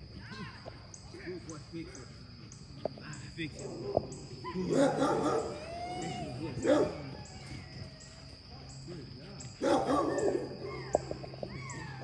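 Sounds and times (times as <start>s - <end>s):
dog barking: 4.5s - 5.6s, 6.6s - 7.2s, 9.6s - 11.0s.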